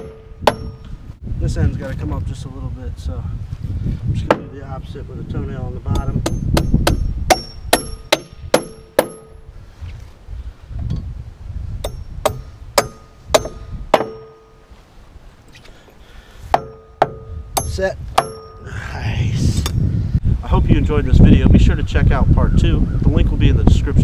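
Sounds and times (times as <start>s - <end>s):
hammer striking nails into wood: 0.0s - 0.9s, 4.3s - 4.5s, 5.9s - 9.4s, 11.8s - 14.5s, 16.5s - 18.6s
rustle: 9.3s - 11.8s, 12.4s - 16.6s.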